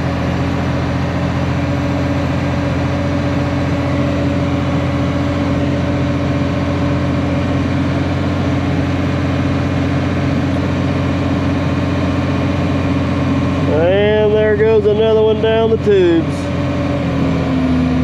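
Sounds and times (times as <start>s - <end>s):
diesel engine running under load: 0.0s - 18.0s.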